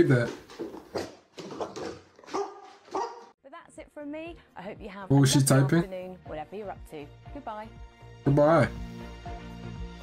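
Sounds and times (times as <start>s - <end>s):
large dog barking: 2.2s - 3.3s.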